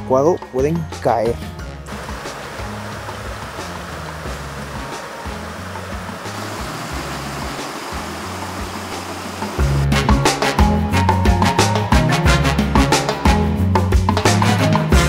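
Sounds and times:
background music bass line: 0:01.6 - 0:15.0
stream rushing over rocks: 0:01.9 - 0:09.7.

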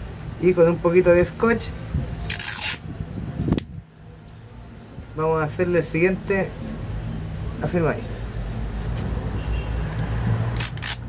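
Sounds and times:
tape ripping off roll: 0:02.3 - 0:02.8, 0:10.5 - 0:11.0.

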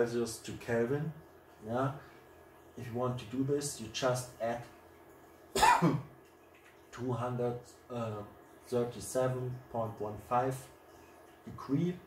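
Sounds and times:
man coughing: 0:05.6 - 0:06.1.

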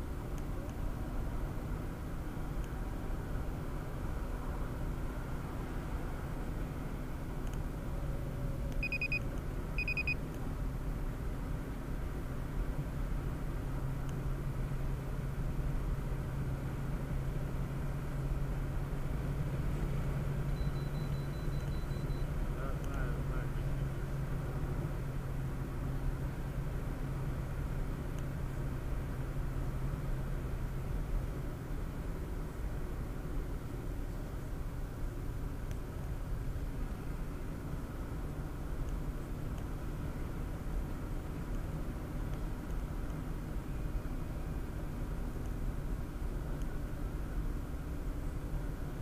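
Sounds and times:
car road and engine noise: 0:00.0 - 0:49.0
short high beeps: 0:08.8 - 0:09.2, 0:09.8 - 0:10.2, 0:20.6 - 0:22.3.

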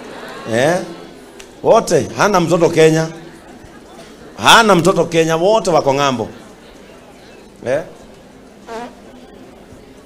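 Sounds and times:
crowded room background noise: 0:00.0 - 0:10.0.

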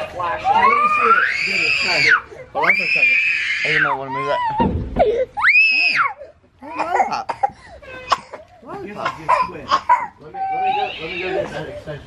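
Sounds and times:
voices: 0:00.0 - 0:04.8, 0:05.7 - 0:12.0.

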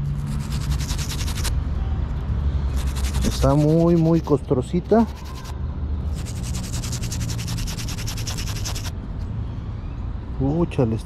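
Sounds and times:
brush scrubbing coin: 0:00.1 - 0:01.5, 0:02.7 - 0:05.5, 0:06.1 - 0:08.9.

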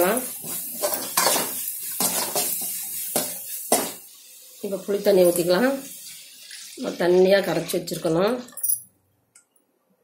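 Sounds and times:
metal spoon scraping a pan: 0:00.0 - 0:04.0
light sizzle of frying: 0:00.0 - 0:08.6.

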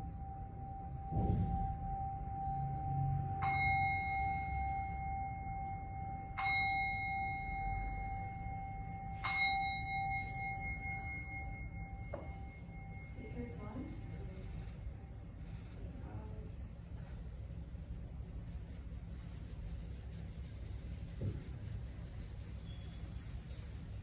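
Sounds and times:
singing bowl strikes: 0:00.0 - 0:14.1
steady ringing tone: 0:00.0 - 0:21.0.

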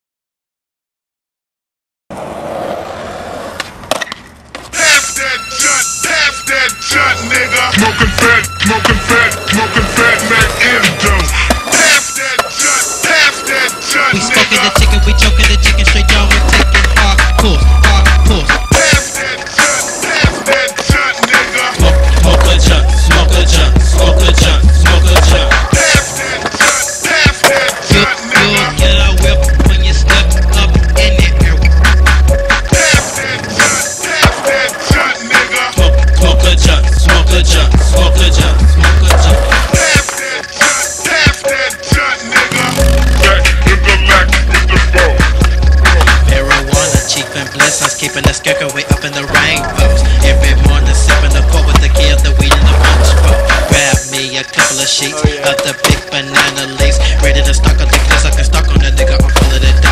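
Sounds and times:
skateboard wheels rolling on concrete: 0:02.1 - 0:59.9
skateboard clacking on concrete: 0:03.5 - 0:04.8, 0:08.0 - 0:12.6, 0:16.2 - 0:17.4, 0:19.6 - 0:32.2, 0:32.9 - 0:35.6, 0:38.8 - 0:41.4, 0:44.3 - 0:49.8, 0:50.8 - 0:56.8, 0:57.8 - 0:58.6
hip hop beat with heavy bass: 0:04.7 - 0:59.9.

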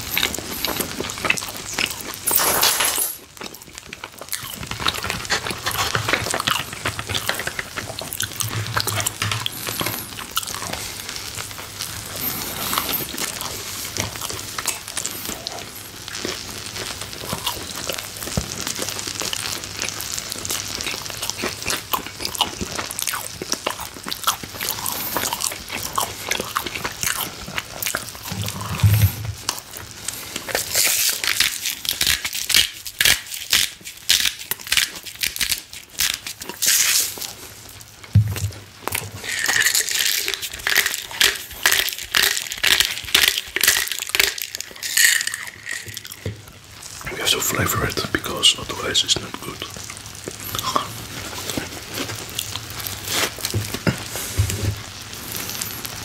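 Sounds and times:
steak sizzling on a grill: 0:03.3 - 0:26.3, 0:28.9 - 0:56.0
spice grinder crunching clicks: 0:38.9 - 0:47.0.

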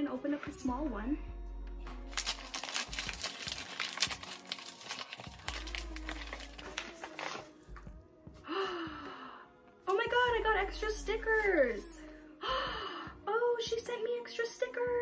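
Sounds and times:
background music: 0:00.0 - 0:15.0
plastic packaging crinkling: 0:02.0 - 0:07.6.

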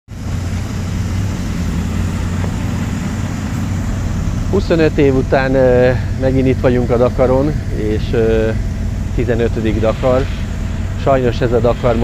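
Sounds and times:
truck engine running at low revs: 0:00.1 - 0:12.0.

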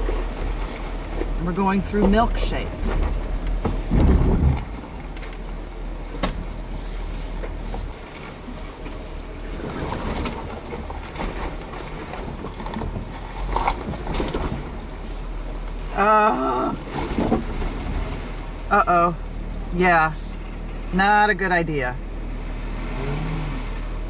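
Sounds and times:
vehicle knocking over rocks: 0:00.0 - 0:05.2, 0:16.8 - 0:18.2
vehicle engine running at low speed: 0:00.0 - 0:24.0.

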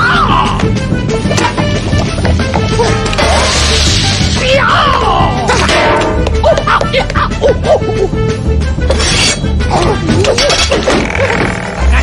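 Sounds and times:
crashing and clattering effects: 0:03.1 - 0:04.4.

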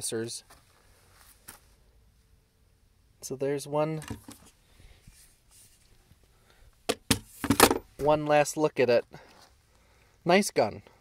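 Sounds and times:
faint handling noise: 0:04.0 - 0:08.3.

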